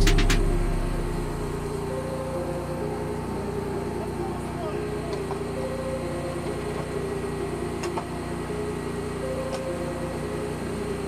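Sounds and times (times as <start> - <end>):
background music with drum hits: 0.0 - 2.0
fire engine motor running: 0.0 - 11.0.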